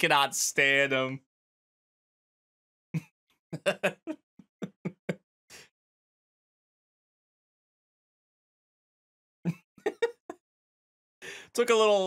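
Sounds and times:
man laughing: 3.0s - 5.2s, 9.5s - 10.4s.

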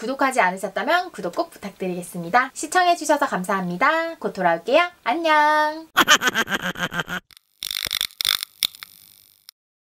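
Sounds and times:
woman laughing: 6.0s - 7.2s.

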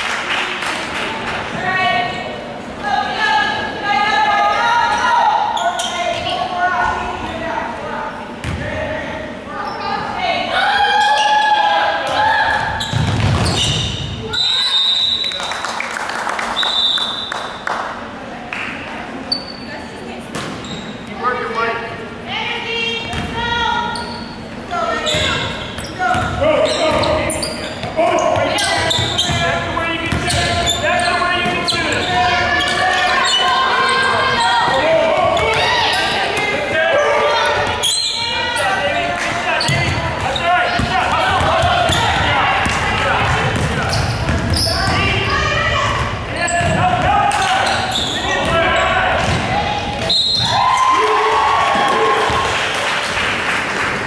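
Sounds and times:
basketballs bouncing on hardwood: 12.9s - 14.0s, 25.1s - 27.2s, 27.8s - 30.7s, 39.7s - 45.3s.

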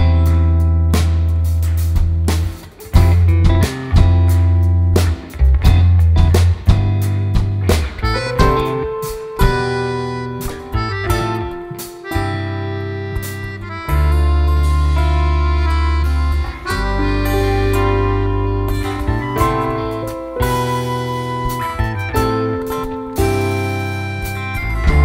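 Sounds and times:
bass: 0.0s - 25.0s
drums: 0.0s - 25.0s
accordion: 7.8s - 25.0s.

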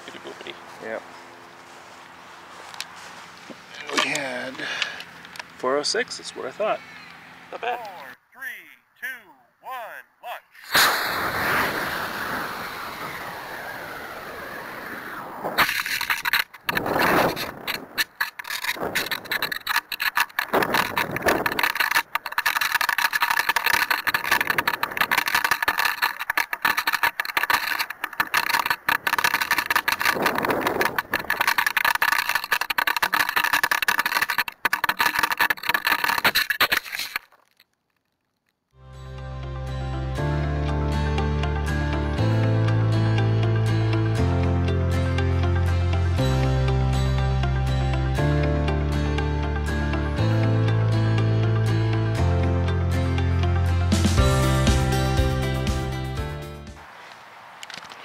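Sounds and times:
sharp jolt: 10.6s - 13.4s, 15.4s - 37.6s
rocket motor rushing burn: 10.6s - 37.2s
wind buffeting microphone: 29.9s - 31.4s.

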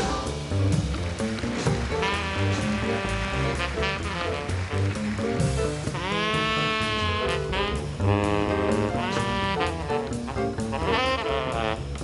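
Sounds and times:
drum kit with cymbals: 0.0s - 12.0s
walking bass line: 0.0s - 12.0s.

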